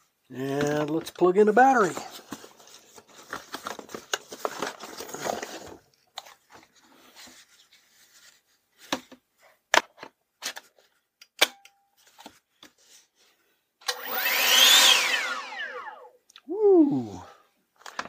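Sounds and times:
leaf blower motor whine: 0:13.9 - 0:16.1.

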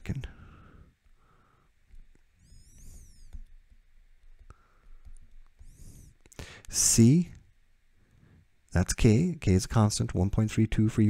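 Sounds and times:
stylus tapping on tablet: 0:01.8 - 0:05.8
high-pitched wavering chirp: 0:02.4 - 0:03.4.

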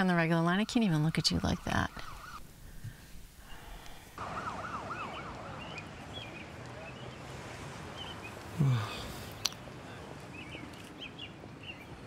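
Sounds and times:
outdoor background hiss: 0:00.0 - 0:12.0
siren yelping: 0:00.5 - 0:02.4, 0:04.2 - 0:05.8.

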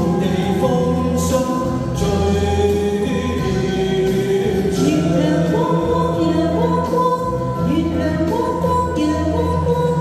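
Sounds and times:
musical accompaniment: 0:00.0 - 0:10.0
vocal duet into microphones: 0:00.0 - 0:10.0.

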